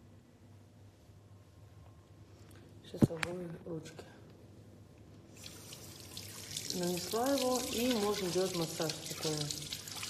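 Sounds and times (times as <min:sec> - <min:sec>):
tap water running into sink: 0:05.4 - 0:10.0.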